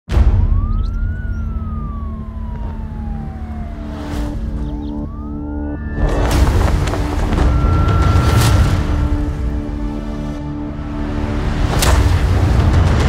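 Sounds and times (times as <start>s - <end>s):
emergency siren wailing: 0.1s - 11.6s
city traffic rumble: 0.2s - 13.0s.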